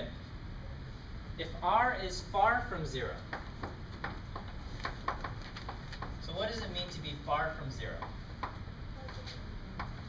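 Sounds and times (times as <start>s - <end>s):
chalk writing on blackboard: 3.2s - 6.2s.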